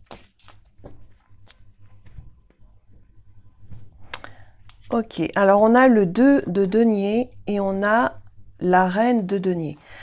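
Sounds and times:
cards being shuffled: 0.0s - 2.2s.

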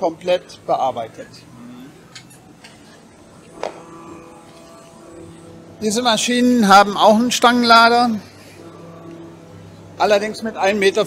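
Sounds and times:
machines running: 0.0s - 11.0s.

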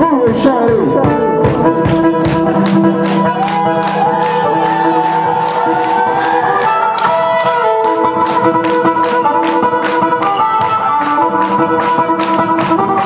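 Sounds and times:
live blues band: 0.0s - 13.0s
sliding lead guitar note: 0.0s - 13.0s
steady drum beat: 0.0s - 13.0s.

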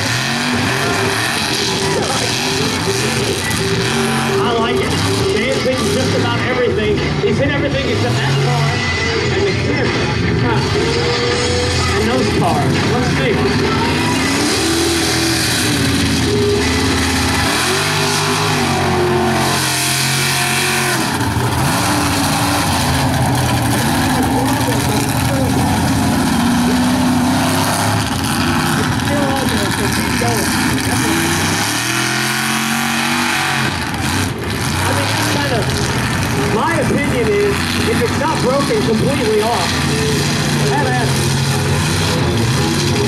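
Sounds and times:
truck engine revving: 0.0s - 43.0s.

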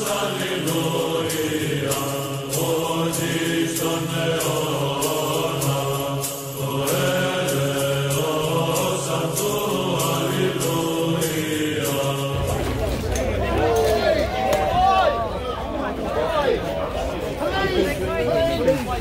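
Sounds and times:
choral chant: 0.0s - 17.9s
crowd noise and voices: 0.0s - 19.0s
light percussion hits: 11.2s - 15.3s
low sustained drone: 12.2s - 15.4s.

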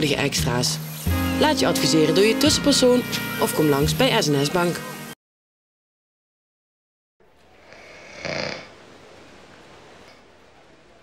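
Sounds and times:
faint room hiss: 7.2s - 11.0s
man snoring: 7.6s - 8.8s.

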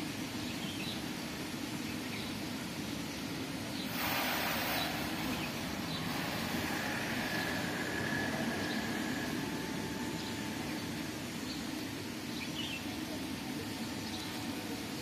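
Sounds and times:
steady low rumble: 1.1s - 15.0s.

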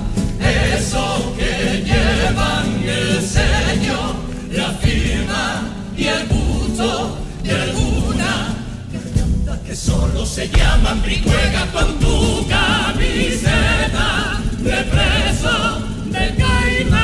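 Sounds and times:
drum strokes: 0.0s - 17.0s
guitar accompaniment: 0.0s - 17.0s
male choir singing: 0.0s - 17.0s.

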